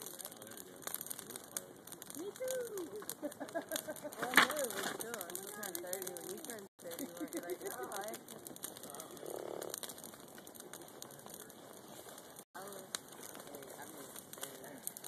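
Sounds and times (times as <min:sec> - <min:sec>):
faint voices: 0:00.0 - 0:03.2, 0:03.9 - 0:15.0
burning wood crackling: 0:00.0 - 0:15.0.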